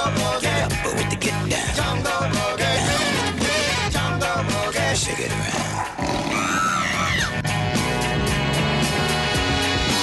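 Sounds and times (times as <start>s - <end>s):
upbeat rock music with guitar: 0.0s - 6.0s, 7.2s - 10.0s.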